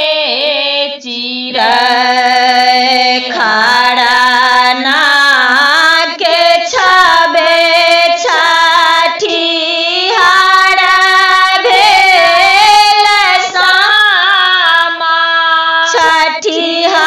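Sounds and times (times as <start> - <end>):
woman singing solo: 0.0 - 17.0.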